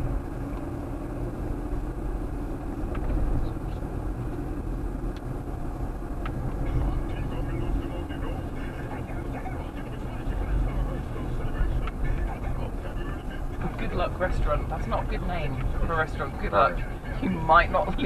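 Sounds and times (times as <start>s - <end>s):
car engine and tyre rumble: 0.0s - 18.0s.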